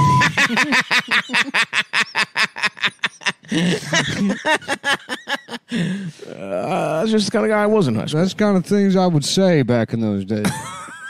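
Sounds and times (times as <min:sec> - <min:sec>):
censor bleep tone: 0:00.0 - 0:00.3
man laughing rapidly: 0:00.0 - 0:06.1, 0:10.4 - 0:11.0.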